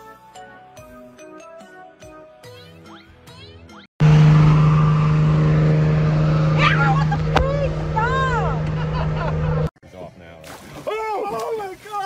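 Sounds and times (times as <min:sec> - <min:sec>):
car engine drone: 0:04.0 - 0:09.7
road rumble: 0:04.0 - 0:09.7.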